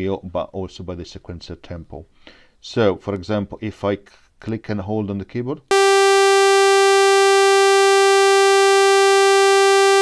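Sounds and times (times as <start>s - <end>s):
synthesizer held note: 5.7s - 10.0s.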